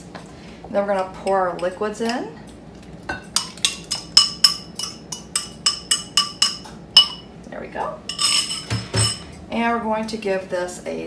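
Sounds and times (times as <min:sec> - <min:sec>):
spoon clinking against a bowl: 0:03.1 - 0:07.3, 0:08.1 - 0:09.3.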